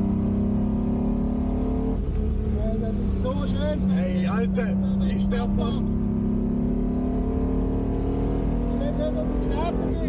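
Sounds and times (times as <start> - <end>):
car engine revving under load: 0.0 - 10.0.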